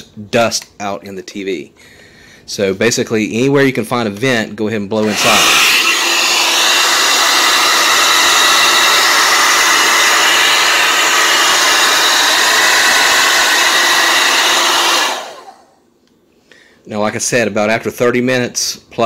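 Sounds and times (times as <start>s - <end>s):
hair dryer blowing air: 5.0s - 15.8s
hair dryer motor winding down: 5.0s - 15.8s.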